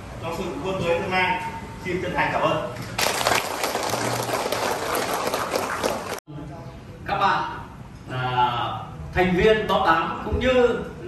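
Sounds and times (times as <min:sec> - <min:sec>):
audience applauding: 0:03.0 - 0:06.2.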